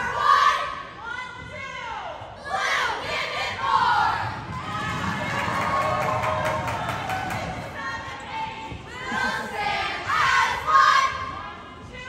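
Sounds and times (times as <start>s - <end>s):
cheerleaders and crowd voices: 0.0s - 12.0s.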